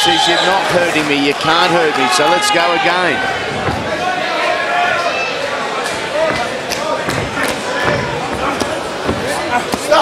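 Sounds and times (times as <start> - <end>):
crowd shouting: 0.0 - 10.0
punches thudding: 6.0 - 10.0.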